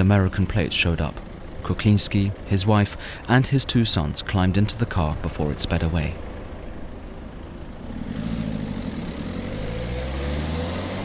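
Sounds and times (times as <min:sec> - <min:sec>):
car engine accelerating: 0:06.1 - 0:11.0.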